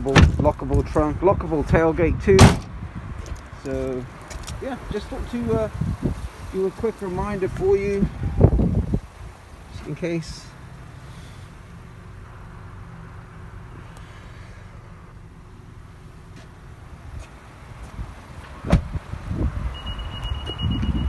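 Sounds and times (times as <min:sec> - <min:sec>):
low steady rumble: 0:00.2 - 0:21.0
vehicle door shutting: 0:02.4 - 0:02.8, 0:18.4 - 0:19.0
high-pitched warning beep: 0:19.7 - 0:21.0.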